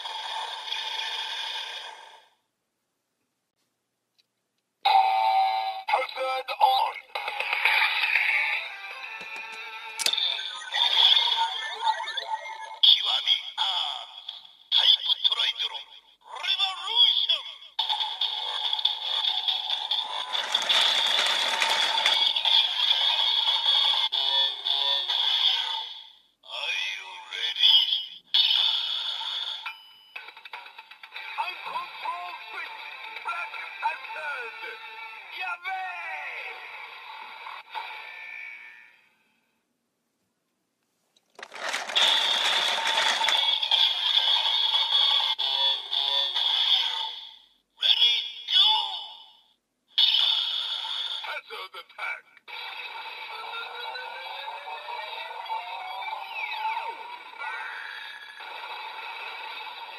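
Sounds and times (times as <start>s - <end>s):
toy voice and music announcement: 4.9s - 18.5s, 31.3s - 36.8s, 44.8s - 47.2s, 47.8s - 49.2s, 51.2s - 52.2s, 53.4s - 58.4s
toy electronic standby sound: 7.2s - 12.8s, 17.8s - 25.8s, 41.4s - 47.1s
plastic ratcheting rattle: 19.8s - 22.8s, 41.3s - 43.8s.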